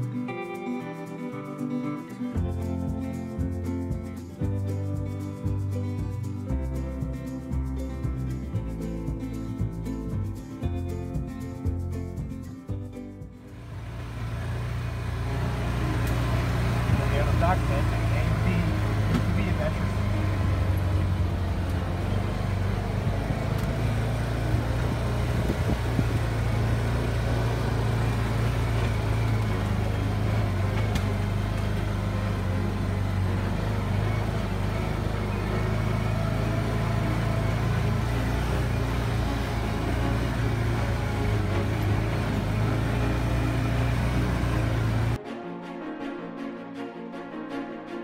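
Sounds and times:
utility vehicle engine droning: 2.2s - 45.2s
wind noise: 24.4s - 26.6s.

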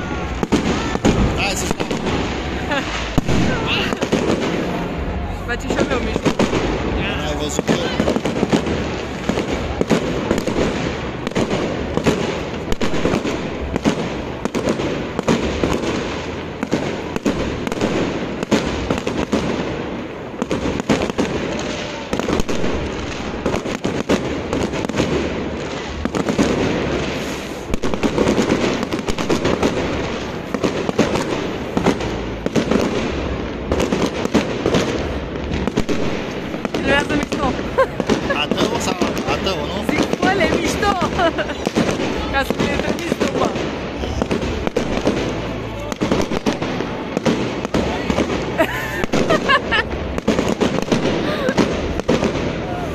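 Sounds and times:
fireworks bangs and crackles: 0.0s - 52.9s
people's voices: 0.0s - 52.9s.

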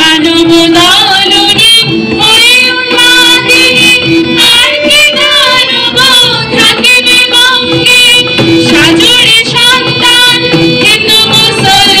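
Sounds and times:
person singing with accompaniment: 0.0s - 12.0s.

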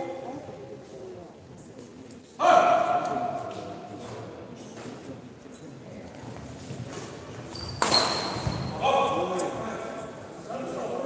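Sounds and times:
shoes squeaking on court floor: 4.6s - 8.8s.

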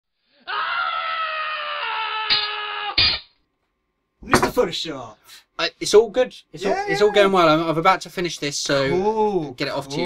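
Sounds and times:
baby crying: 0.5s - 3.0s, 6.6s - 7.3s.

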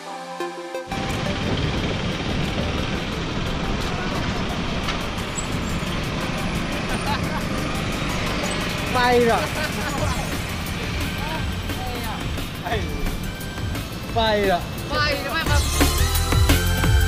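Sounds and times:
road traffic: 0.0s - 17.0s
wind rush on microphone: 0.9s - 5.9s.

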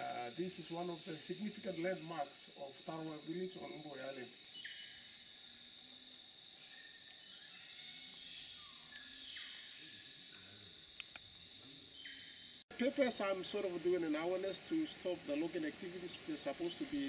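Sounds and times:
man speaking: 0.0s - 4.3s, 12.7s - 17.0s
insects droning: 0.0s - 17.0s.

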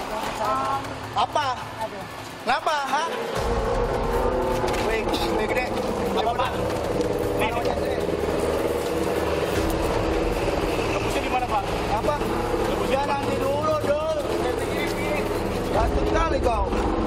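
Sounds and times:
men talking and calling out: 0.0s - 17.0s.

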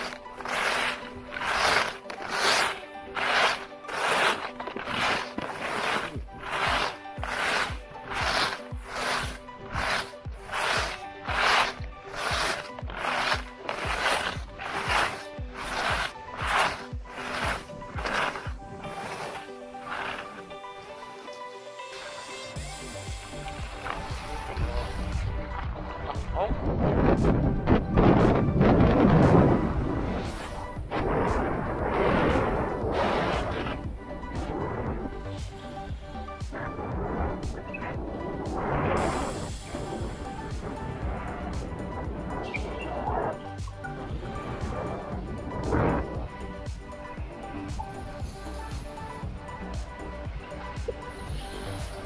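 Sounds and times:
skis scraping through snow: 0.0s - 25.5s, 28.1s - 52.0s
background music: 0.0s - 52.0s
wind buffeting microphone: 24.0s - 35.4s.

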